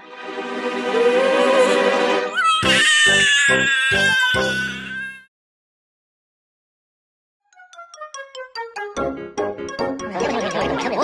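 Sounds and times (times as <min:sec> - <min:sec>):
cartoon kitten crying: 0:00.9 - 0:05.2.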